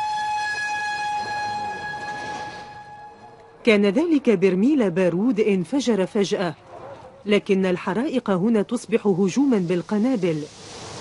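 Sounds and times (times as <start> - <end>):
truck horn long note: 0.0 - 3.6.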